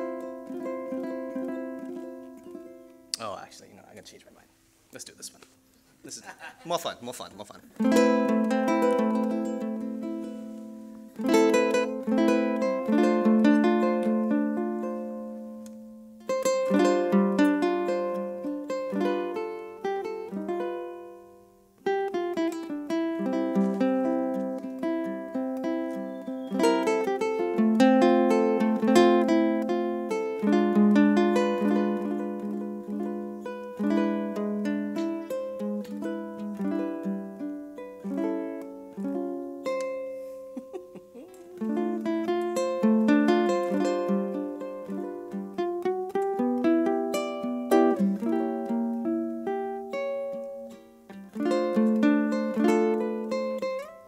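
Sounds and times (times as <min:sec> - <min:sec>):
ukulele playing a tune: 0:00.0 - 0:03.8, 0:06.8 - 0:54.0.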